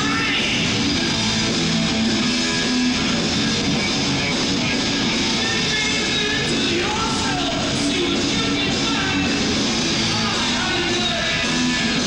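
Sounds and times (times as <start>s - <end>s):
electric guitar chords: 0.0s - 12.0s
heavy metal band playing live: 0.0s - 12.0s.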